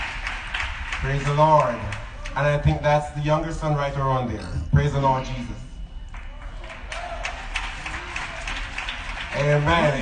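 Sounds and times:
crowd clapping: 0.0 - 2.7, 6.1 - 10.0.

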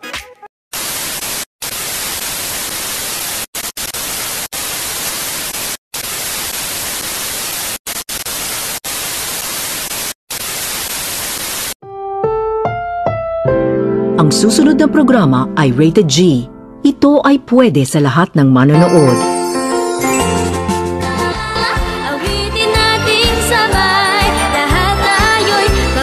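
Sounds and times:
television static hiss: 0.8 - 11.8.

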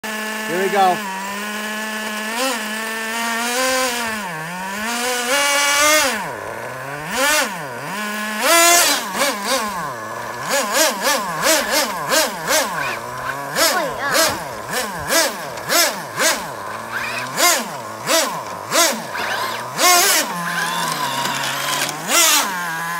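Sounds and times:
small nitro engine revving: 0.0 - 22.9.

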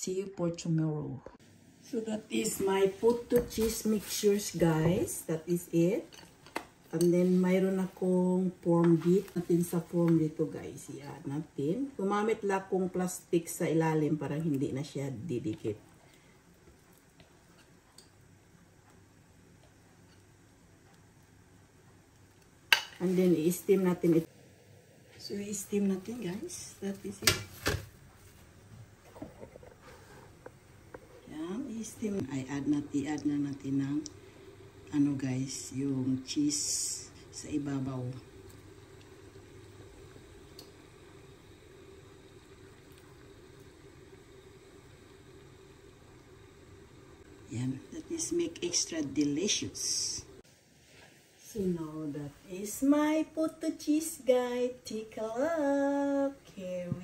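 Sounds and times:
faint kitchen hum and hiss: 0.0 - 57.0.

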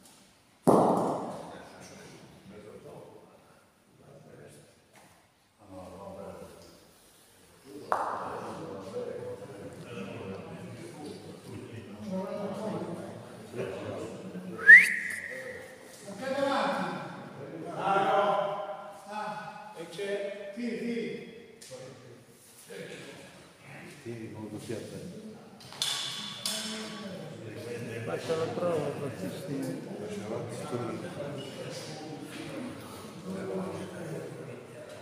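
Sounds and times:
bocce ball hard knock: 0.6 - 1.5
person whistling upward slide: 14.6 - 15.6.

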